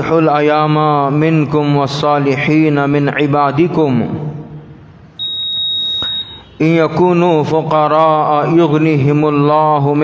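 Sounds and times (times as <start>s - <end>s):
echoing recited speech: 0.0s - 4.5s, 6.6s - 10.0s
high-pitched electronic beep: 5.2s - 6.6s.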